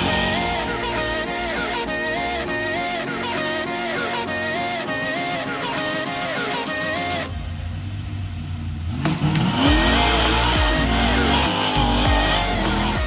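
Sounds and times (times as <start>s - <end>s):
car engine revving: 0.0s - 0.8s, 7.0s - 13.0s
tires squealing: 8.9s - 13.0s.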